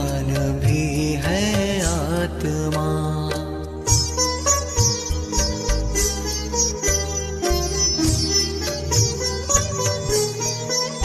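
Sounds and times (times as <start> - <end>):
person singing devotional song: 0.0 - 4.2.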